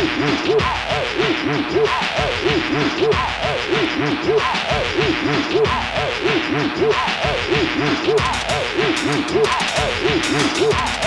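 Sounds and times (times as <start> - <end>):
driving kick drum: 7.2 - 11.0.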